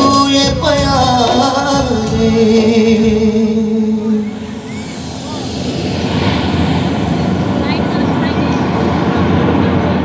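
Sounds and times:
crowd cheering and shouting: 4.0 - 8.5.

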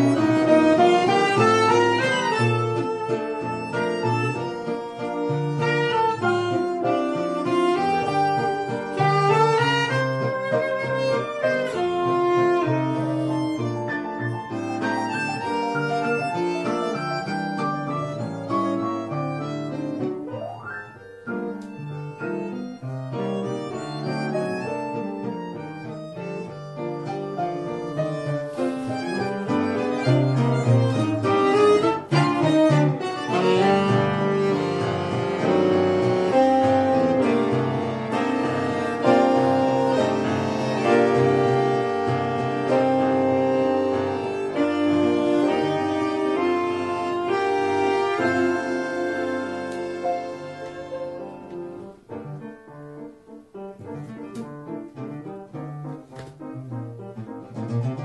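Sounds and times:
saxophone: 0.0 - 52.1
bandoneon: 0.0 - 58.0
piano: 0.0 - 58.0.

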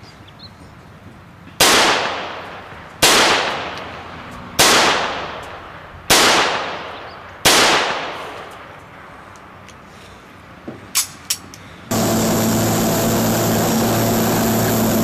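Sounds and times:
pistol shots with echo: 1.6 - 3.8, 4.6 - 5.4, 6.1 - 8.3.

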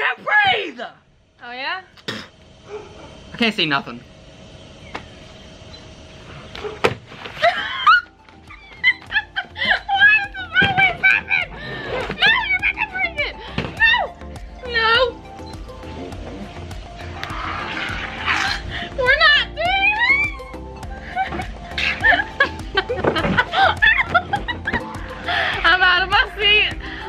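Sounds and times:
people shrieking and laughing: 7.3 - 12.4, 17.2 - 25.5
background music: 7.4 - 27.0.

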